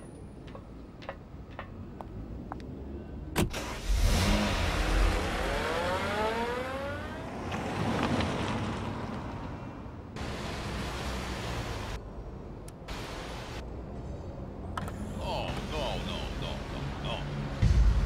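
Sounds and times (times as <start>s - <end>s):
tyres on wet road: 0.4s - 12.1s, 14.8s - 18.0s
car engine accelerating: 3.5s - 8.9s.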